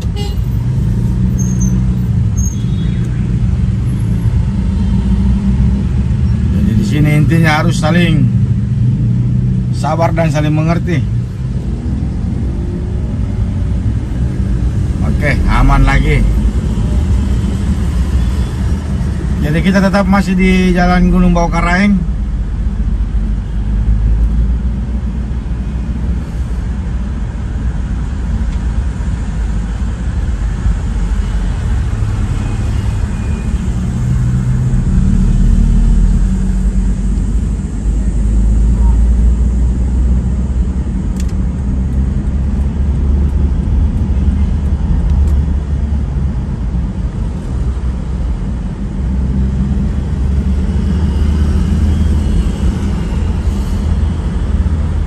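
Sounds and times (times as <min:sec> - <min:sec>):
car driving in traffic: 0:00.0 - 0:55.0.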